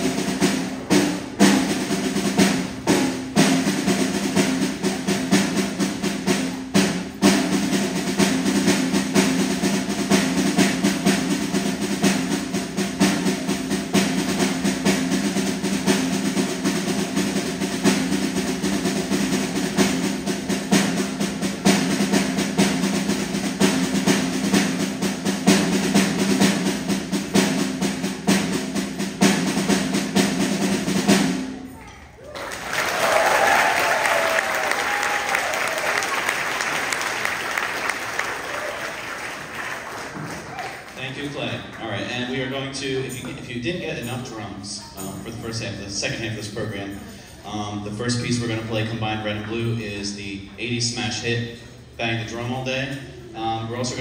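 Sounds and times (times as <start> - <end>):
snare drum rolls: 0.0 - 46.9.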